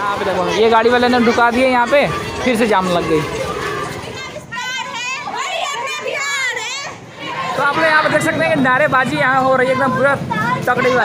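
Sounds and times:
girls chanting slogans: 0:00.2 - 0:08.2.

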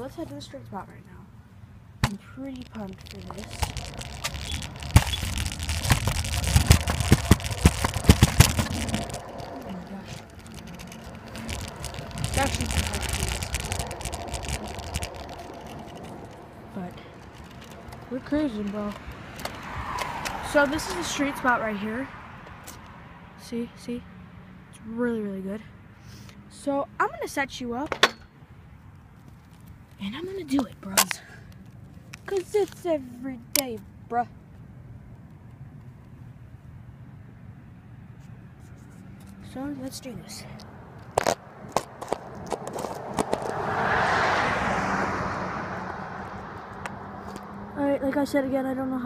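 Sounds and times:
sharp clicks and knocks: 0:02.0 - 0:16.5
rolling and rattling: 0:02.1 - 0:21.0, 0:40.9 - 0:44.8
camera knocking on hard surface: 0:03.6 - 0:09.5.

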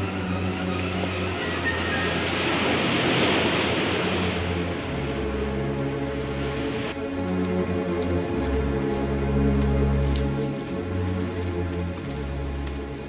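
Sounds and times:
rushing noise: 0:00.0 - 0:07.0
drama score with low notes: 0:00.0 - 0:13.0.

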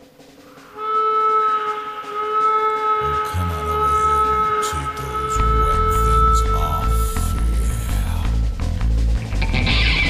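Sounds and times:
steady electronic tone: 0:01.8 - 0:10.0.

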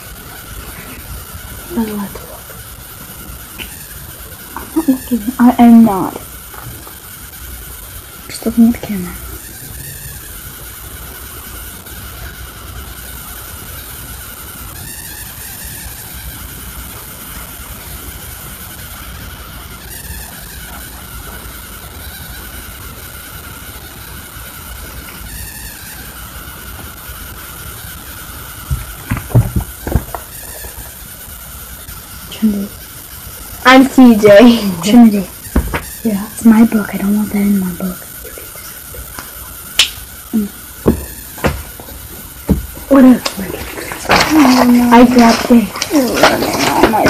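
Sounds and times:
background hiss and hum: 0:00.0 - 0:47.0
notebook knocking and bumping: 0:28.7 - 0:30.3, 0:35.6 - 0:35.9, 0:40.8 - 0:41.9, 0:42.5 - 0:42.8.

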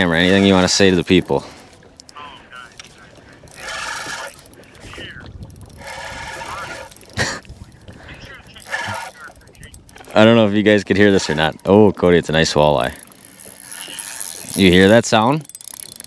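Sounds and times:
fishing reel whirring and clicking: 0:00.0 - 0:16.0
man talking through phone speaker: 0:02.2 - 0:03.2, 0:04.6 - 0:05.4, 0:08.0 - 0:09.8.

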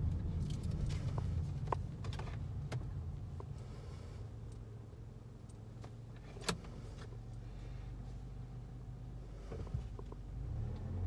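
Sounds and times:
car cabin idling rumble: 0:00.0 - 0:11.0.

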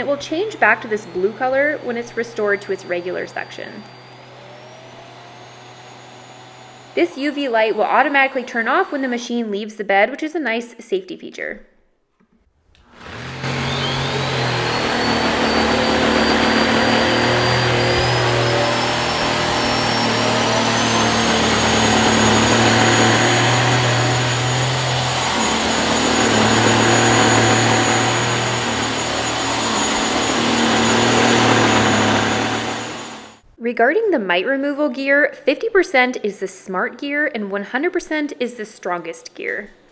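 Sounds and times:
handheld vacuum running: 0:00.0 - 0:09.5, 0:12.8 - 0:33.4.

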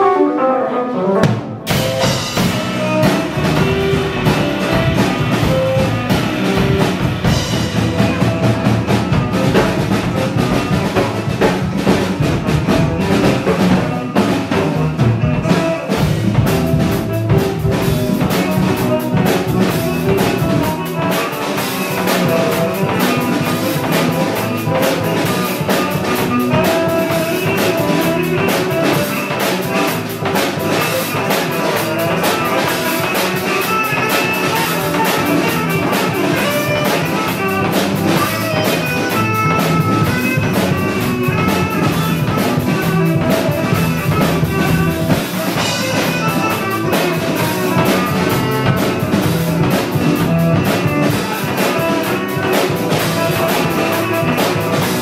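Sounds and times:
live band music: 0:00.0 - 0:55.0
drums and cymbals: 0:01.2 - 0:55.0.

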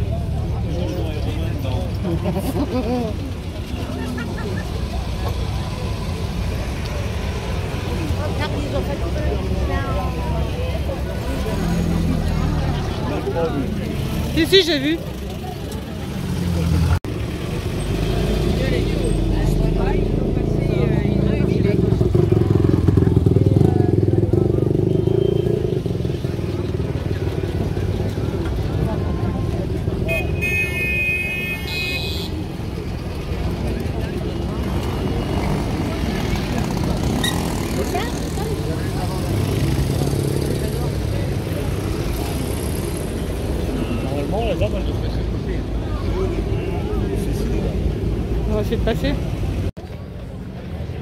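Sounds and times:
car engines driving past: 0:00.0 - 0:30.1
roadside crowd voices: 0:00.0 - 0:51.0.

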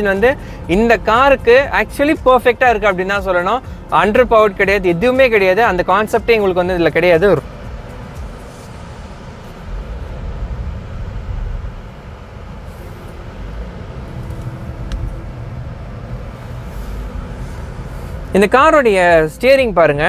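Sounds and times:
car cabin road and engine rumble: 0:00.0 - 0:20.0.

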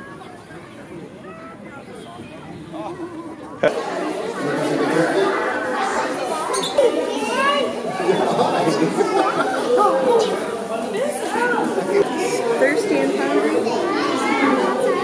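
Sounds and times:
children talking and calling out: 0:00.0 - 0:15.0.

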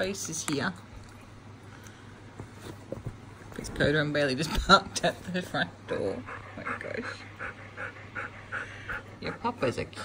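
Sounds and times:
dogs panting: 0:05.9 - 0:10.0.

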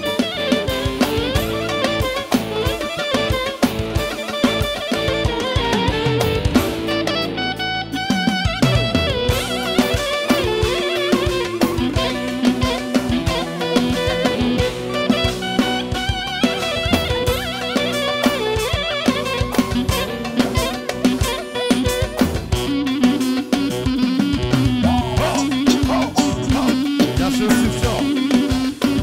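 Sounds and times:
drum-kit beat: 0:00.0 - 0:07.1, 0:08.2 - 0:29.0
plucked-string lead melody: 0:00.0 - 0:29.0.

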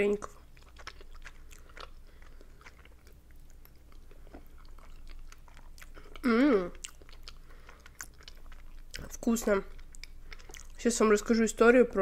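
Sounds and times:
chewing with wet mouth clicks: 0:00.0 - 0:11.3
person humming mmm: 0:06.0 - 0:06.8.

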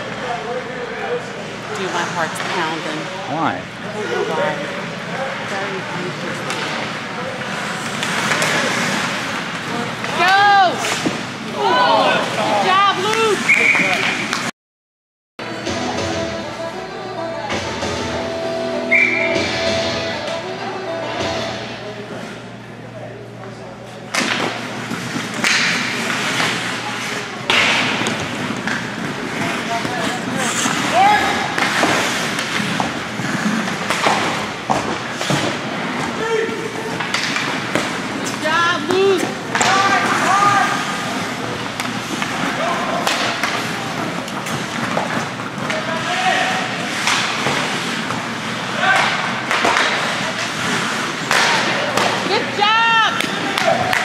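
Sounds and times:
people shouting: 0:11.5 - 0:13.4, 0:38.5 - 0:41.0
music: 0:15.4 - 0:21.7.

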